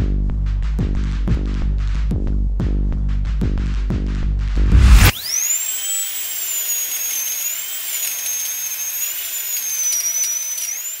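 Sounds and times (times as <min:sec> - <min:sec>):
dental drill whining: 0:04.8 - 0:11.0.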